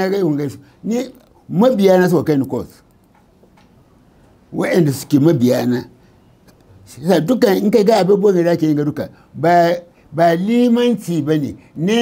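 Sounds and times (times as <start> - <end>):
man speaking: 0.0 - 2.8, 4.5 - 6.0, 6.8 - 12.0.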